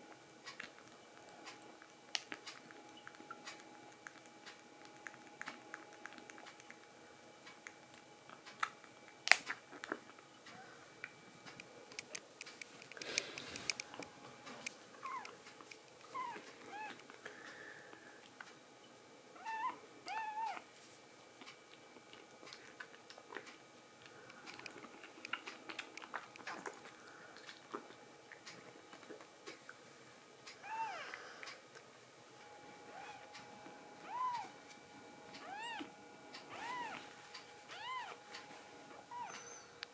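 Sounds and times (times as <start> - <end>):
kitten meowing: 19.4 - 20.6, 30.6 - 31.1, 34.0 - 34.5, 35.4 - 35.9, 36.5 - 37.0, 37.7 - 38.2, 39.1 - 39.6.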